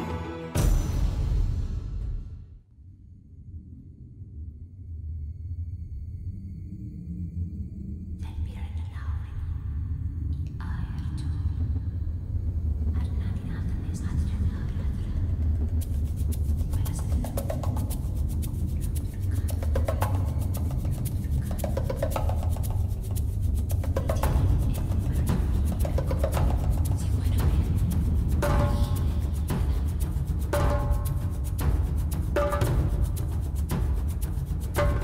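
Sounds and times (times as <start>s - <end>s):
steady deep low band: 0.0s - 35.0s
rapid hand drum strokes: 15.0s - 35.0s.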